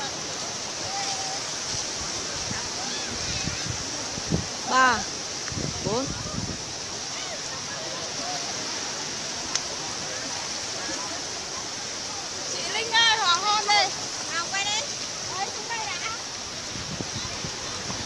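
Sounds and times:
sea surf washing onto beach: 0.0 - 18.0.

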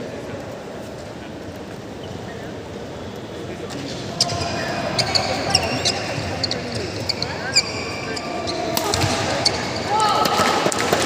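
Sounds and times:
shoe squeaks on court: 3.7 - 9.9.

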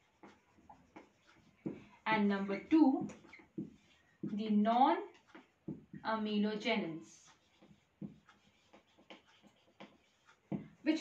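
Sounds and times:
marker scratching on whiteboard: 0.0 - 11.0.

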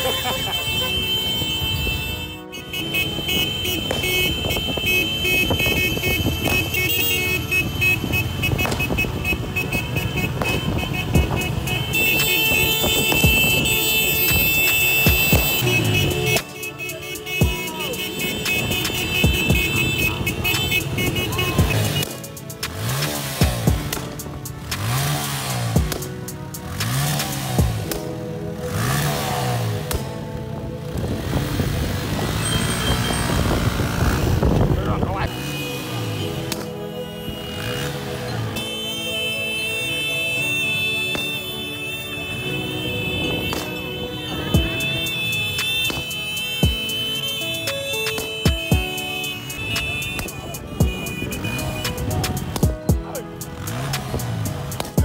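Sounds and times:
voices: 0.0 - 27.7, 31.9 - 55.0
motorcycle engines revving: 0.0 - 55.0
music: 0.0 - 55.0.

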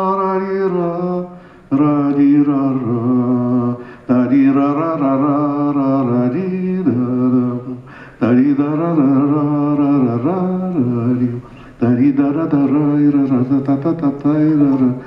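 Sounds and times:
man singing unaccompanied: 0.0 - 15.0.

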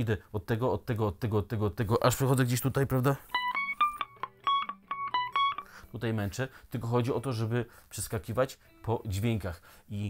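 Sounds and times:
electric guitar picked notes: 3.2 - 5.9.

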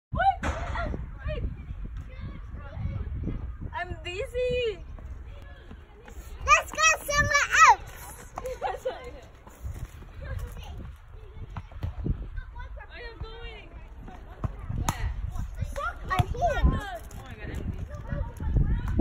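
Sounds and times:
low rumble on microphone: 0.1 - 6.4
voices at a playground: 0.1 - 19.0.

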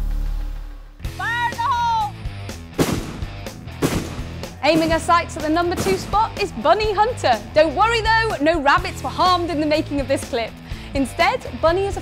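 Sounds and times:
background music: 0.0 - 12.0
rifle shots with echo: 2.8 - 4.9.

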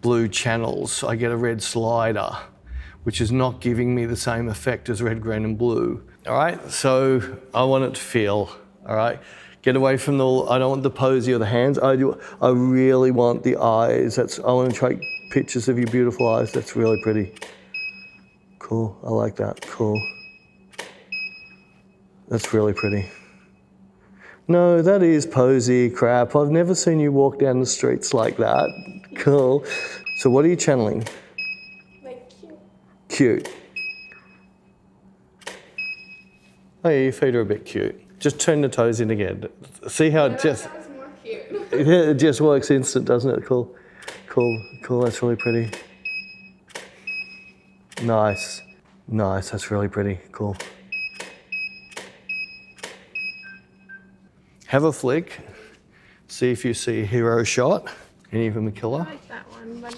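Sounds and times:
camera shutter click: 20.7 - 21.0, 35.4 - 35.8, 46.7 - 47.0, 50.6 - 52.2
studio flash ready beep: 44.3 - 48.8, 50.9 - 54.1.

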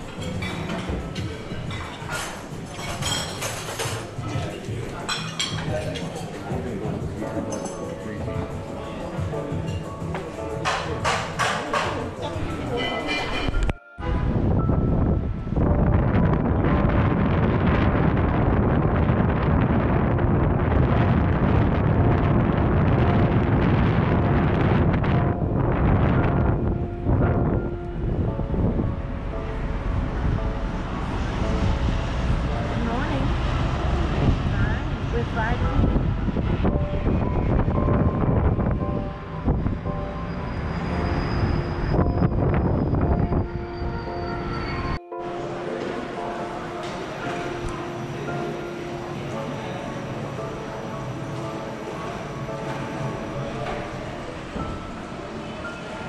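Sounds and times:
wind rumbling on microphone: 13.5 - 45.0
distant city traffic: 14.1 - 56.0.

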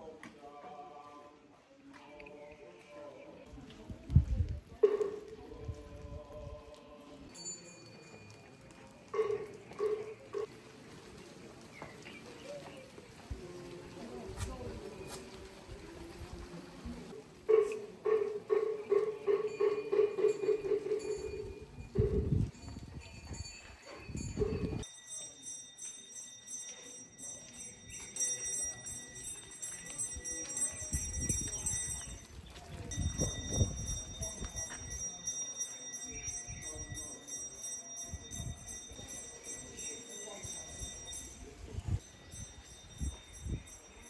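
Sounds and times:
small bells jingling: 7.0 - 10.5, 18.9 - 44.0.

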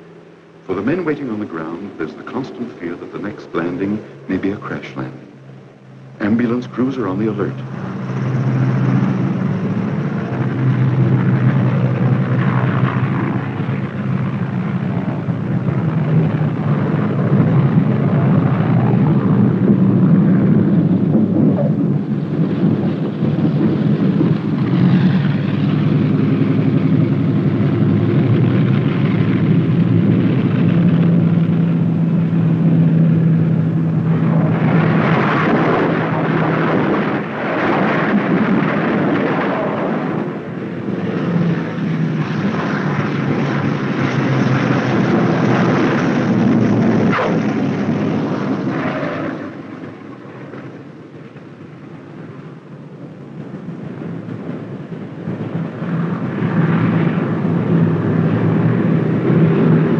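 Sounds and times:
propeller planes droning: 0.0 - 59.9.

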